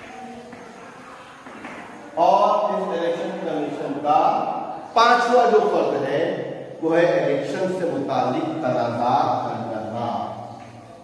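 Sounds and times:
man speaking: 0:02.2 - 0:10.5.

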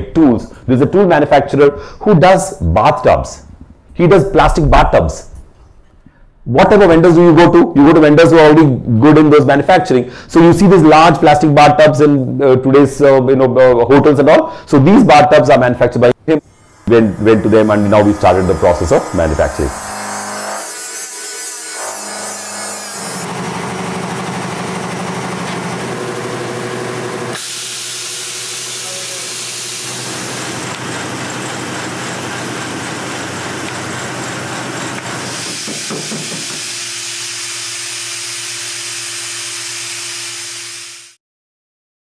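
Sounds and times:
electric grinder grinding: 0:16.5 - 0:41.2.

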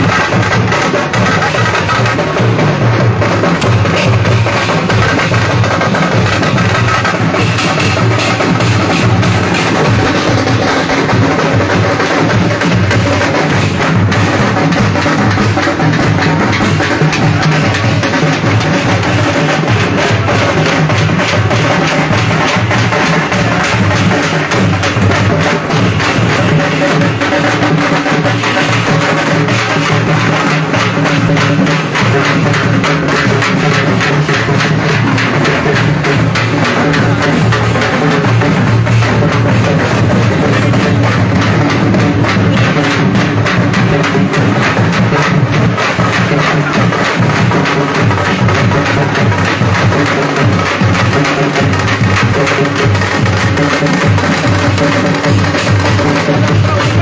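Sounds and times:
loud music with fast drumming: 0:00.0 - 0:57.0.

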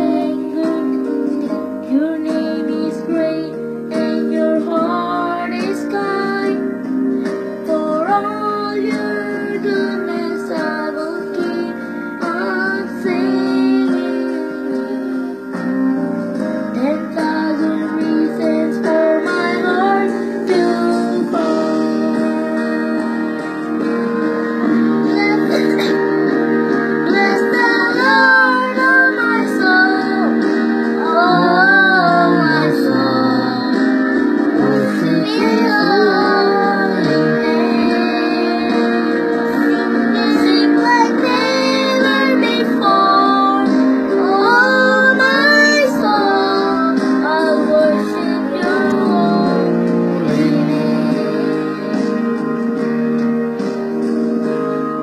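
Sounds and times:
children singing into microphone: 0:00.0 - 0:01.2, 0:27.0 - 0:51.9
guitar accompaniment: 0:00.0 - 0:55.0.

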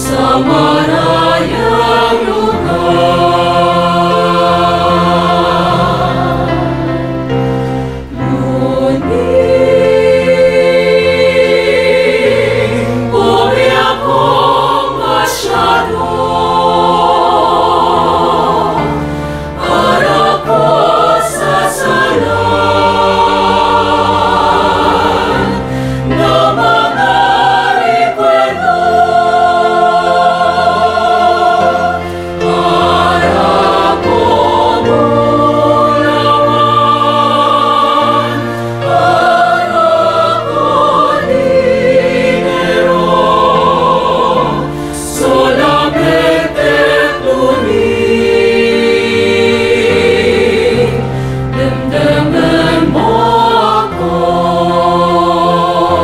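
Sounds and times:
mixed choir singing in harmony: 0:00.0 - 0:56.0.

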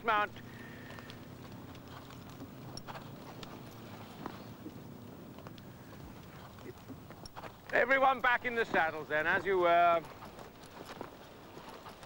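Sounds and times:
horse hoofbeats on grass: 0:00.0 - 0:12.0.

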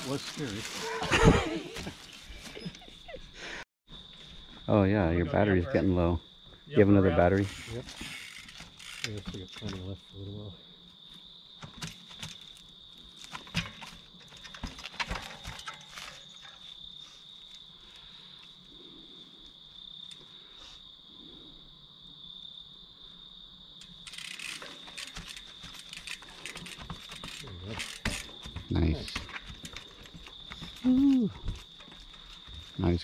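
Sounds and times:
high-pitched insect chirring: 0:06.8 - 0:10.3, 0:23.3 - 0:28.4
bike landing on rock: 0:11.6 - 0:16.6, 0:24.2 - 0:30.8.

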